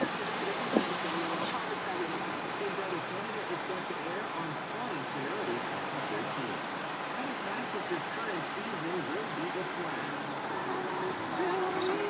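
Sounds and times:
car cabin noise: 0.0s - 6.5s
low indistinct talking: 0.0s - 12.0s
brief hiss: 0.7s - 1.8s.

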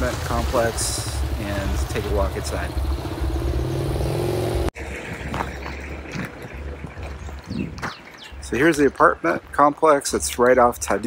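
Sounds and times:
vehicle engine revving: 0.0s - 4.8s.

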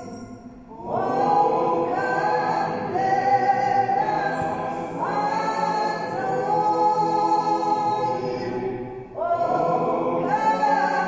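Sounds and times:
group singing slow hymn: 0.6s - 11.0s.

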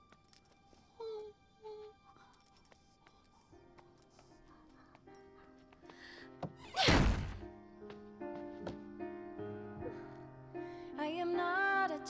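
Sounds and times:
soft background music: 0.0s - 12.0s
door slam: 6.7s - 7.5s.

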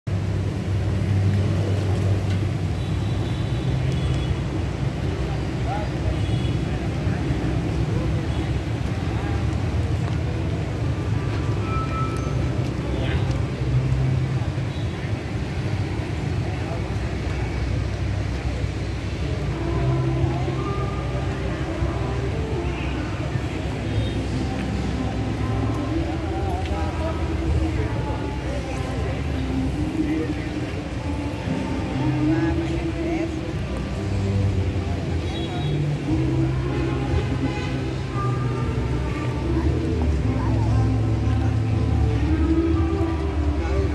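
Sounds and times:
background voices: 3.6s - 43.9s
music: 24.2s - 43.9s.

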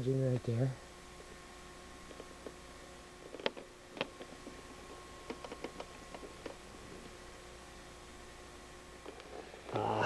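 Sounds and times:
faint steady hum: 0.0s - 10.0s
faint clicks and crackles: 3.2s - 7.2s.

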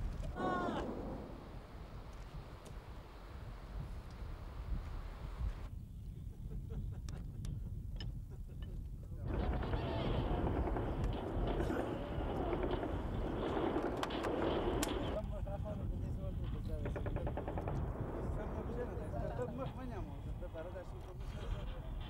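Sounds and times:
low rumble: 0.0s - 4.6s
distant gunshots: 0.6s - 2.1s, 9.3s - 15.2s
automatic gunfire: 9.3s - 15.2s
men talking: 15.1s - 22.0s.

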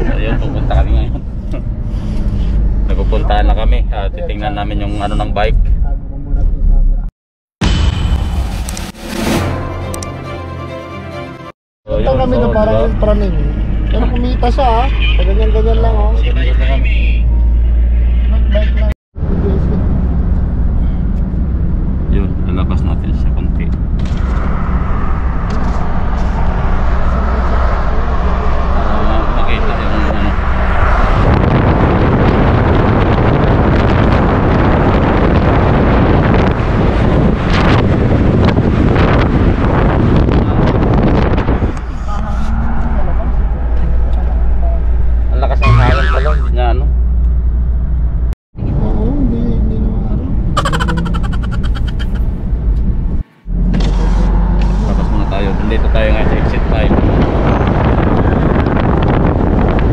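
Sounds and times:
truck road and engine rumble: 0.0s - 59.9s
voices: 45.4s - 46.9s, 48.8s - 52.2s.

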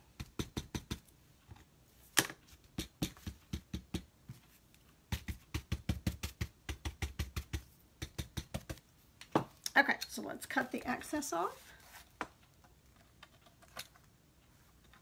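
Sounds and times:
paintbrush tapping on paper: 2.7s - 4.4s, 5.1s - 9.5s.

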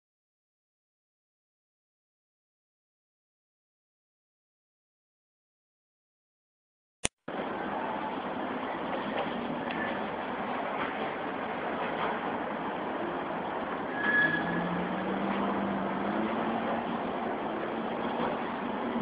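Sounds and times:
rushing traffic noise: 7.3s - 19.0s
vehicle engine hum: 7.3s - 19.0s.

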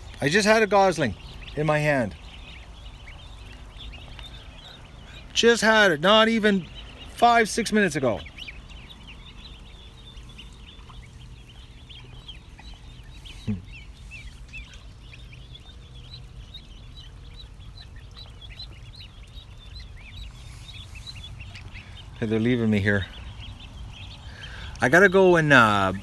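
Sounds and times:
ducklings peeping: 0.0s - 26.0s.

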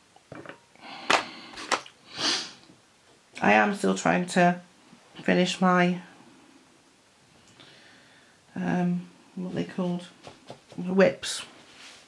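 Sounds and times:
short hiss: 1.5s - 2.6s.

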